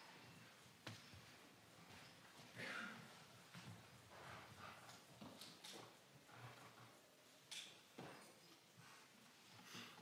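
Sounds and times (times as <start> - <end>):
soft shuffling: 0.0 - 7.0
footsteps of dress shoes: 0.2 - 7.0.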